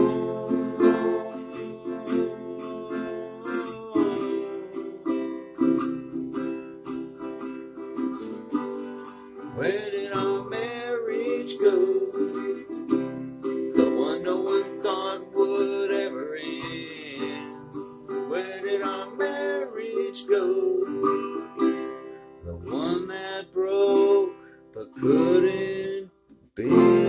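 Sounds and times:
man singing: 0:00.0 - 0:05.6, 0:09.6 - 0:12.8, 0:13.7 - 0:21.9, 0:22.5 - 0:27.0
electric guitar playing slow song: 0:00.0 - 0:26.0, 0:26.6 - 0:27.0.

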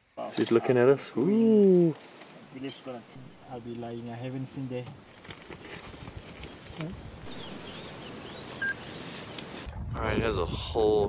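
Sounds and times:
bird chirping: 0:06.4 - 0:09.5.

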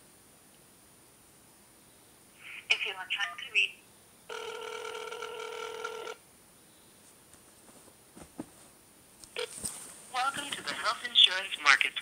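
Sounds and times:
telephone ringback tone: 0:04.3 - 0:06.2.

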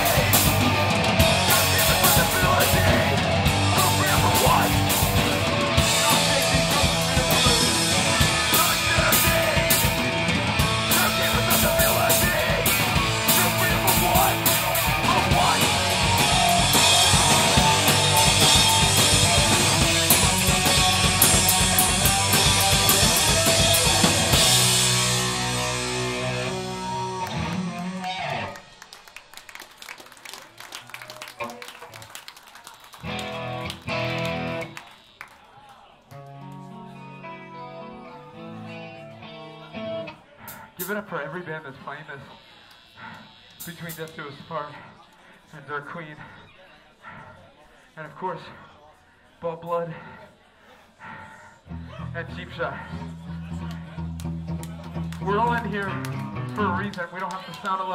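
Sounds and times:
quiet electric guitar chords: 0:00.0 - 0:28.6, 0:33.1 - 0:34.7, 0:36.1 - 0:40.2, 0:51.7 - 0:57.0
punk band playing live: 0:00.0 - 0:28.7, 0:33.0 - 0:34.8, 0:51.7 - 0:57.0.

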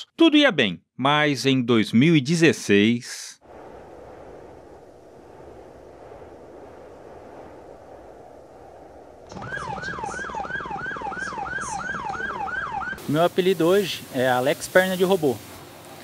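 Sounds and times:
low rumble: 0:03.4 - 0:10.4
siren yelping: 0:09.3 - 0:13.0.

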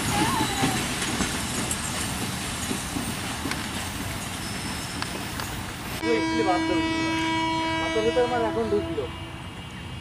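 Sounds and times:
train wheels rumbling on rails: 0:00.0 - 0:10.0.

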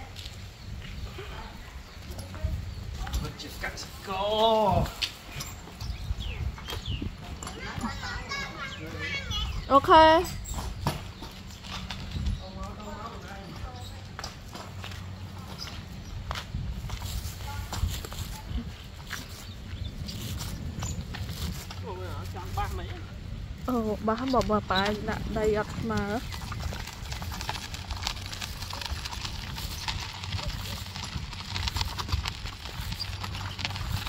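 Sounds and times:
hand truck wheels crunching on grit: 0:02.5 - 0:34.0
hand truck rumbling over dirt: 0:23.7 - 0:34.0
wheels knocking: 0:23.8 - 0:34.0.

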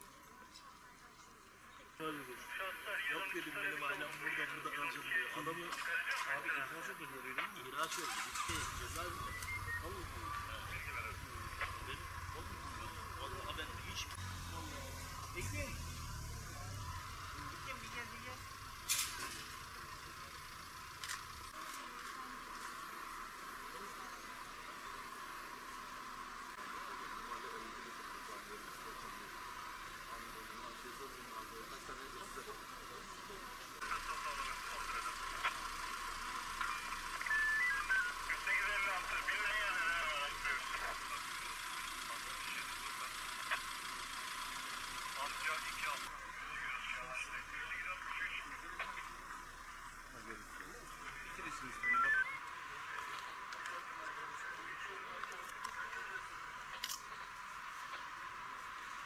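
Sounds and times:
hissy outdoor ambience: 0:00.0 - 0:59.0
indistinct voices talking: 0:00.0 - 0:59.0.

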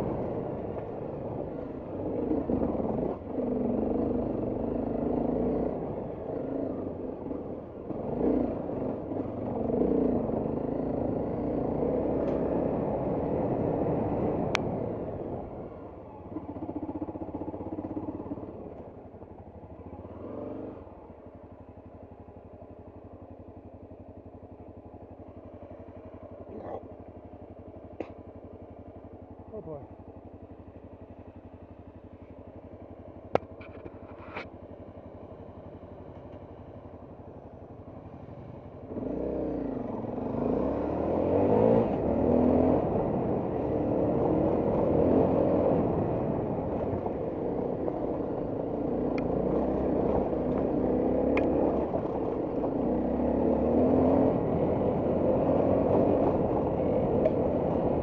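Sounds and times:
motorcycle engine idling and revving: 0:00.0 - 0:58.0.

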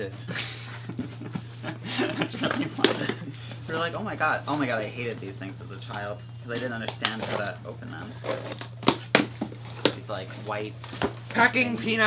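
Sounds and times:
packaging torn and crinkled: 0:08.2 - 0:10.0.

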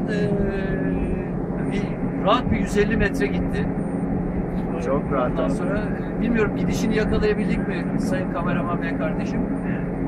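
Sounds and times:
ship machinery rumble: 0:00.0 - 0:10.0.

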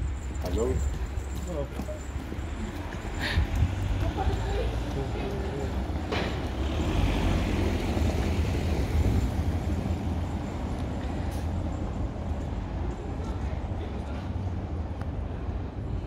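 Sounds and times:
low street rumble: 0:00.0 - 0:16.0.

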